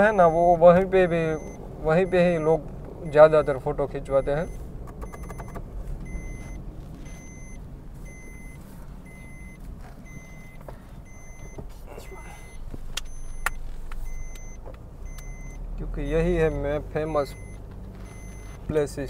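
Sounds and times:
car engine and road rumble: 0:00.0 - 0:19.0
dashboard warning chime beeping: 0:00.0 - 0:19.0
sharp clicks: 0:04.8 - 0:05.7.

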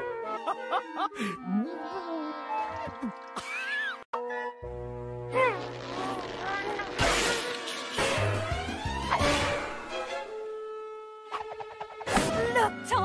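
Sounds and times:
orchestral cartoon music: 0:00.0 - 0:13.0.

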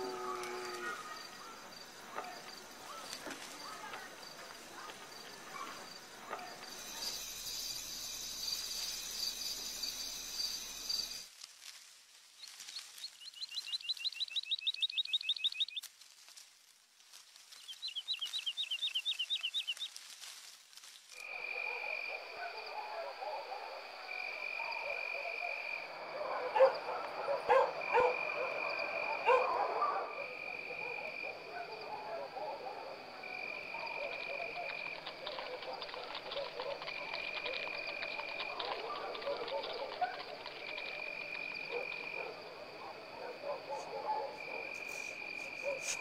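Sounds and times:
animal calls: 0:21.2 - 0:46.0
sharp animal calls: 0:21.3 - 0:46.0.

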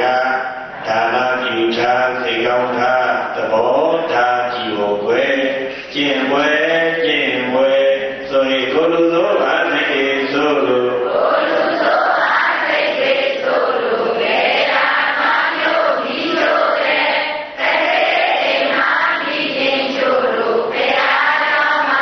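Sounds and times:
monk chanting into microphone: 0:00.0 - 0:11.2
crowd chanting together: 0:09.4 - 0:22.0.

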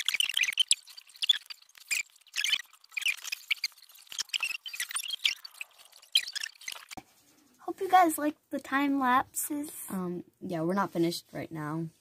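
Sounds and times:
sped-up squeaks and chirps: 0:00.0 - 0:07.0.

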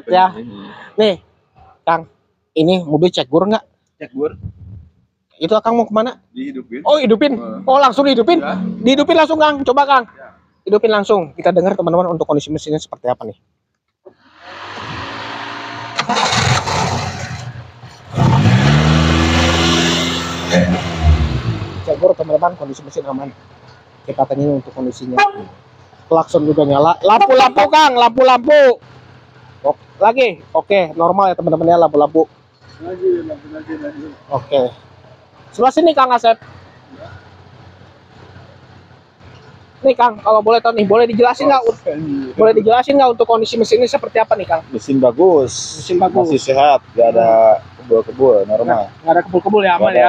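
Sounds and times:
car engine idling: 0:05.4 - 0:10.1, 0:14.4 - 0:50.0
car engine cranking and starting: 0:14.2 - 0:24.2.

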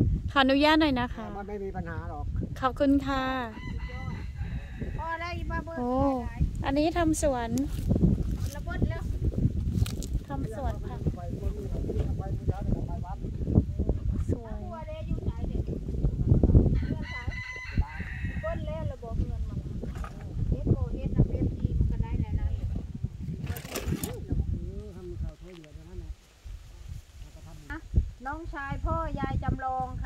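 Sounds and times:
rooster crowing faintly: 0:03.5 - 0:05.3, 0:16.7 - 0:18.8.

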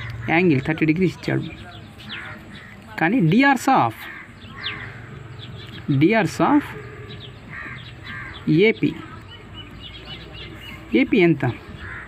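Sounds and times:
birds calling and chirping: 0:00.0 - 0:12.0.

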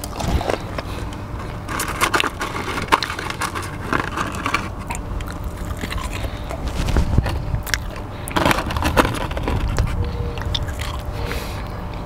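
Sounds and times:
chewing crunchy fries: 0:00.0 - 0:12.0
steady low hum: 0:00.0 - 0:12.0.

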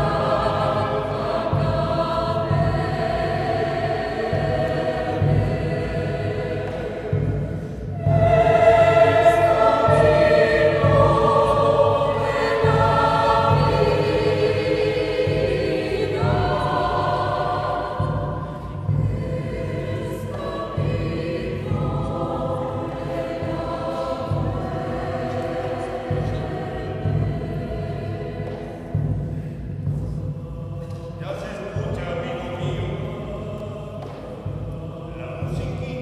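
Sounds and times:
mixed choir singing: 0:00.0 - 0:36.0.

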